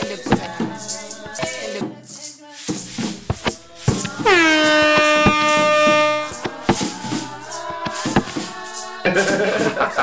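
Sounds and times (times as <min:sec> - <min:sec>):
sharp percussion hits: 0:00.0 - 0:10.0.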